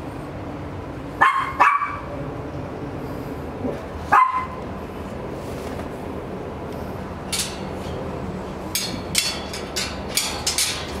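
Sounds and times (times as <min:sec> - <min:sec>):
steady low hum: 0:00.0 - 0:11.0
metal cage rattling: 0:07.3 - 0:07.9, 0:08.7 - 0:11.0.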